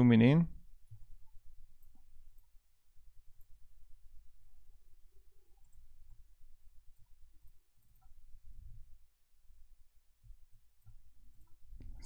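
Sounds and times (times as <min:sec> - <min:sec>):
computer mouse clicks: 0:00.8 - 0:02.6, 0:03.2 - 0:03.6, 0:05.5 - 0:06.3, 0:06.9 - 0:08.4, 0:10.2 - 0:12.0.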